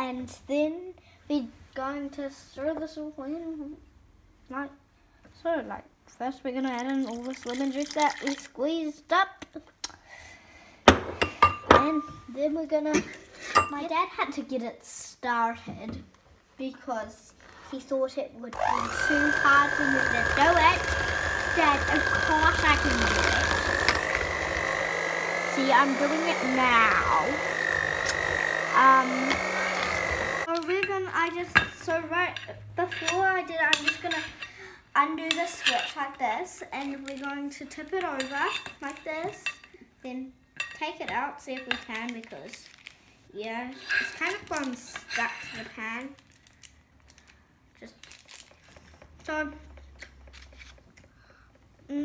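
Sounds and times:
electric mixer whining: 18.6 - 30.5
mixer click: 27.4 - 28.7
baking paper crinkling: 41.9 - 43.1, 46.0 - 49.0.

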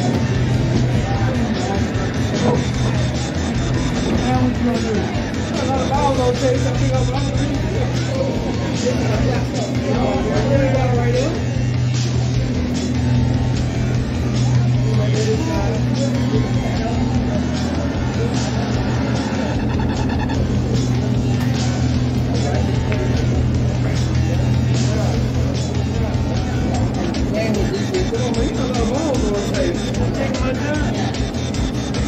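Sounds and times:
music playing: 0.0 - 32.0
people talking: 0.0 - 32.0
steady low hum: 0.0 - 32.0.

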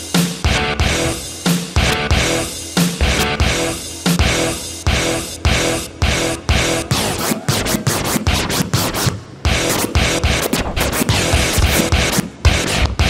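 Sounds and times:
dj scratching a music track: 0.0 - 13.0.

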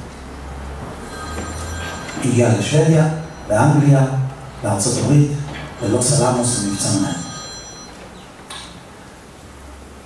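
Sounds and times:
hall reverberation: 0.9 - 8.1
faint high steady tones: 1.0 - 9.4
man lecturing: 2.2 - 7.3.

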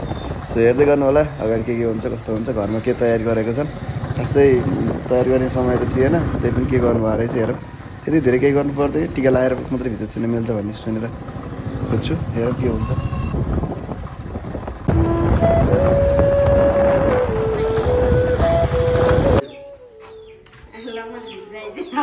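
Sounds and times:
wind noise: 0.0 - 10.2, 11.1 - 19.4
motorcycle engine: 0.0 - 19.4
road noise: 0.0 - 22.0
tune of long held notes: 14.9 - 20.4.

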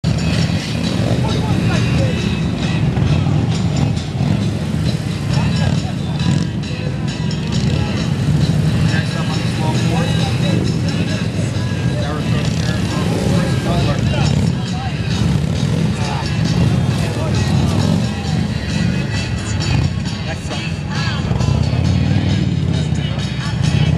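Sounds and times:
background music: 0.0 - 23.9
crowd voices: 0.0 - 23.9
motorcycle engine running at low revs: 0.0 - 23.9.

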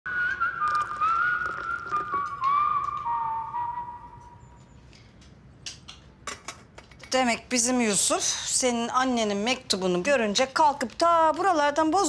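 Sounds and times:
person whistling a tune: 0.1 - 4.6.

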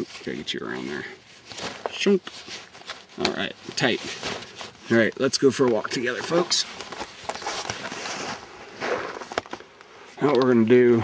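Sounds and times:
camera handling rustle: 5.6 - 10.5.

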